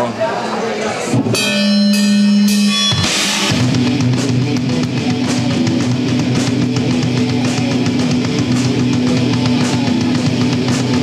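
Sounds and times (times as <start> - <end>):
rock band playing: 1.2 - 11.0
cymbal crash: 1.4 - 6.6.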